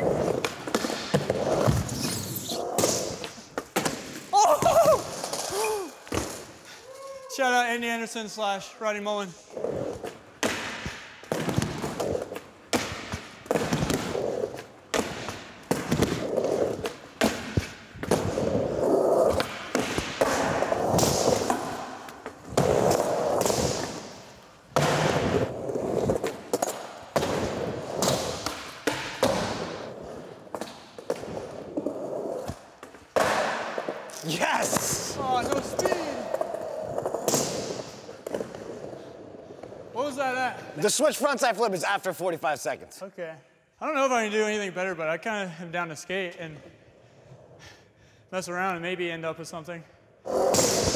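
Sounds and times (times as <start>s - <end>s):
skateboard wheels rolling: 0.0s - 3.8s, 13.5s - 39.9s.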